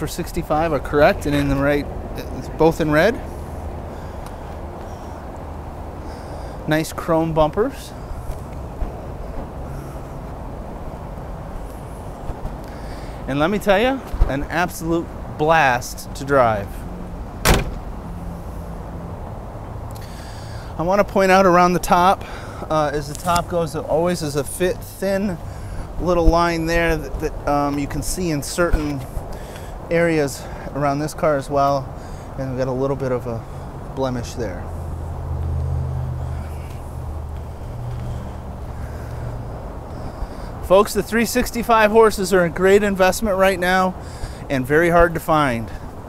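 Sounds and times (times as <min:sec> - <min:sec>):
vehicle engine idling: 0:00.0 - 0:46.0
car door shutting: 0:17.4 - 0:18.0.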